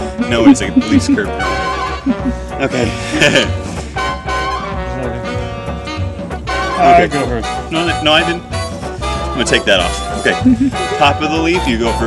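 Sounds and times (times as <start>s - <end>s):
swing jazz with brass horns: 0.0s - 12.0s.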